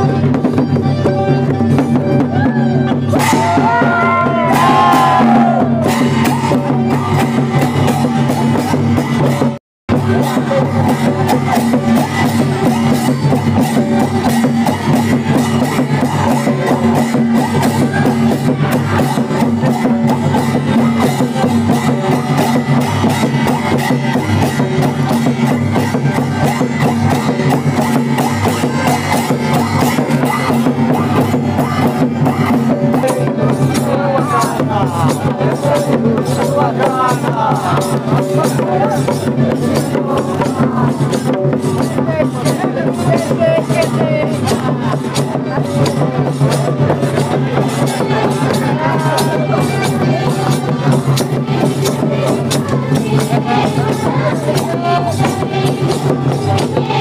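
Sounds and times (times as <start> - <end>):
fast dense drumming: 1.5 - 57.0
person singing: 48.0 - 57.0.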